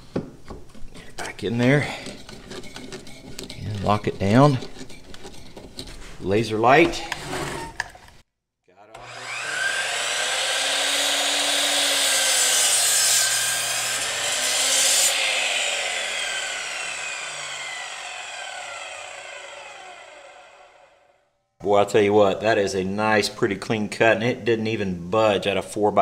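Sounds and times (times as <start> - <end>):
miter saw cutting wood: 9.0 - 21.1
saw motor whine spinning down: 9.0 - 21.1.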